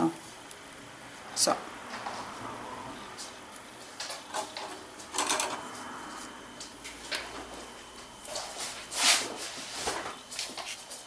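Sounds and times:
art materials rustling and tapping: 3.2 - 11.0.

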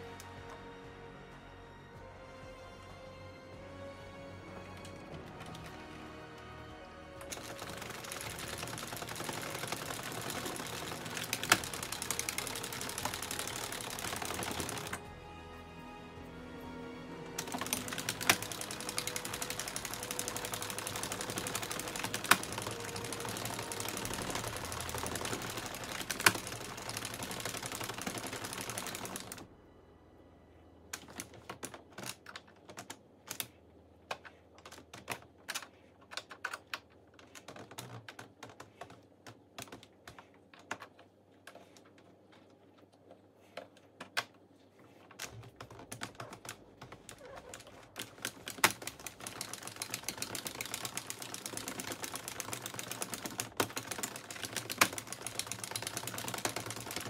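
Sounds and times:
knitting machine needles rattling: 7.0 - 15.1, 17.4 - 29.5, 30.9 - 44.2, 44.9 - 57.0.

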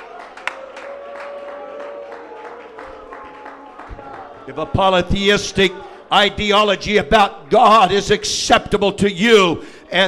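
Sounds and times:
hand claps: 0.0 - 4.4.

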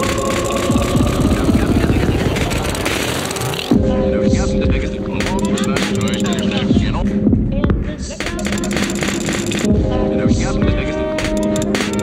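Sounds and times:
quick clicks: 0.0 - 3.8, 5.1 - 6.5, 8.2 - 9.7, 11.2 - 12.0
steady held tones: 0.0 - 3.9
throbbing electronic hum: 0.0 - 3.9.

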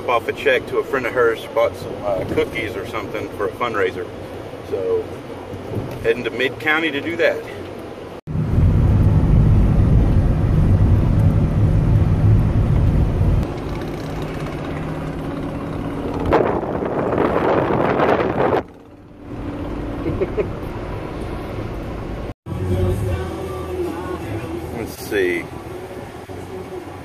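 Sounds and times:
car cabin road and engine noise: 0.0 - 27.0.

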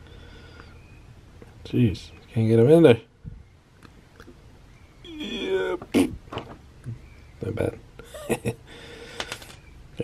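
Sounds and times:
faint plastic clicks: 9.2 - 9.6.

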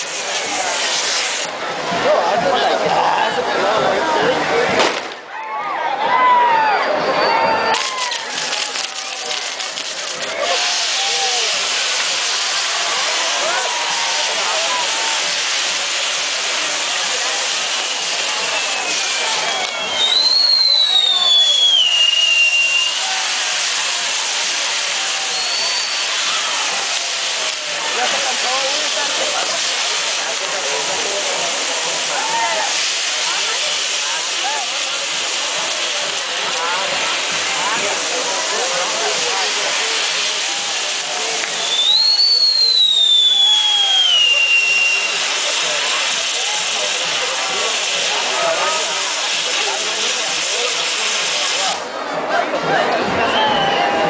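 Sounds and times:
loud hiss of firework sparks: 0.0 - 1.6, 7.7 - 51.9
crowd voices: 0.0 - 54.0
high falling whistle: 18.3 - 23.1, 41.6 - 45.2.

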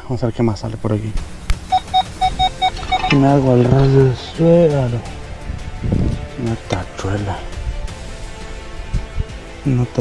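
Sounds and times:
metal detector beeping: 1.7 - 3.9.

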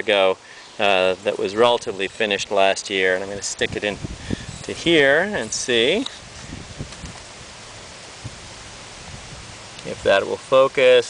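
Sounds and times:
outdoor hiss: 0.0 - 11.0.

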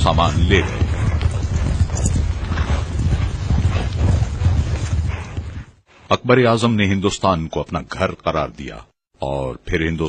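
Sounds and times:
horses galloping: 0.0 - 5.8.

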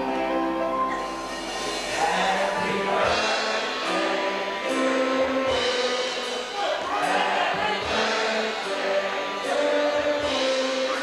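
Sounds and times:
voices singing: 0.0 - 11.0.

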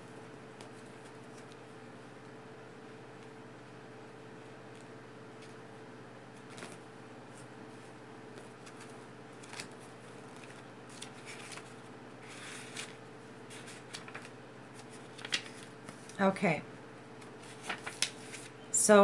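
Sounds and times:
faint steady hum: 0.0 - 19.0
paper rustling: 0.5 - 1.7, 6.3 - 16.2, 17.2 - 18.6.

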